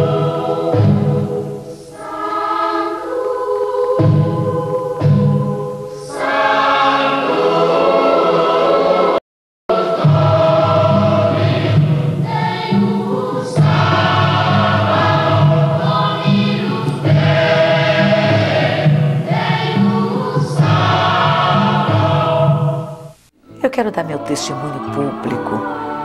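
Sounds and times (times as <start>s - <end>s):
choir singing held notes: 0.0s - 23.2s, 23.8s - 26.0s.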